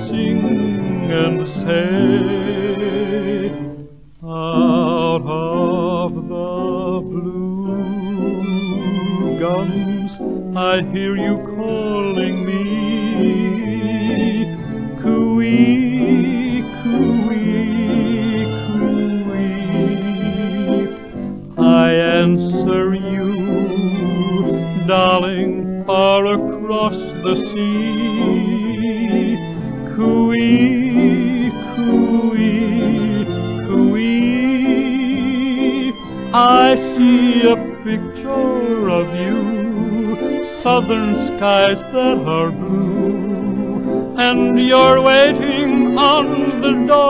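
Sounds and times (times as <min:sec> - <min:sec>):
old dance orchestra record: 0:00.0 - 0:47.0.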